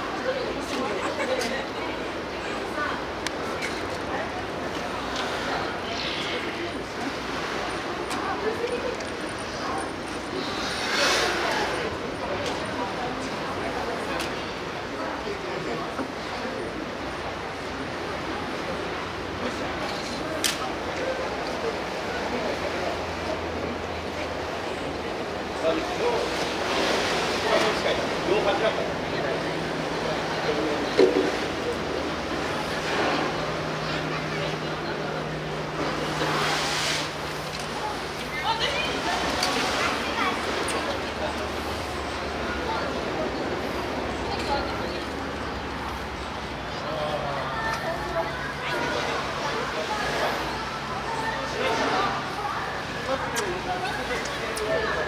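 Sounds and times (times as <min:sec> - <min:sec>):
faint voices: 0:00.0 - 0:55.0.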